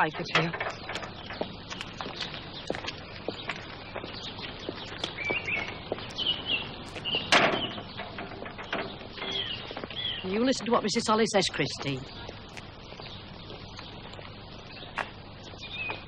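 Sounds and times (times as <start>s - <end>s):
small birds chirping: 0.0s - 16.0s.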